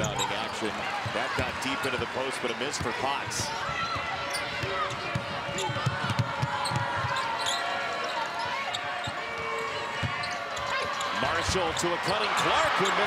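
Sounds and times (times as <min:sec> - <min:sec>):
crowd noise: 0:00.0 - 0:13.0
sneakers squeaking on floor: 0:03.8 - 0:13.0.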